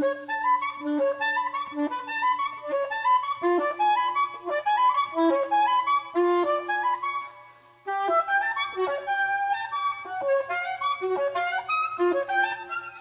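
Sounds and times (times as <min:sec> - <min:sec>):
soprano saxophone fast melody: 0:00.0 - 0:07.3, 0:07.9 - 0:13.0.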